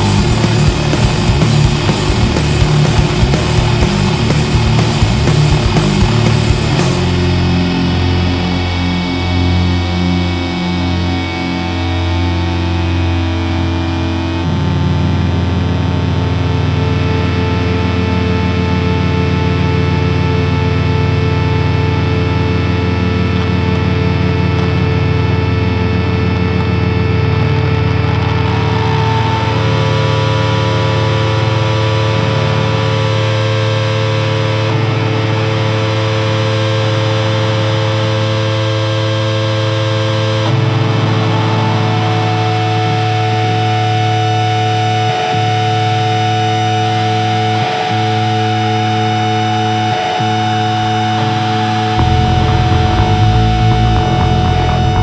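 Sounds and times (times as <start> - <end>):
distorted electric guitar droning: 0.0 - 55.0.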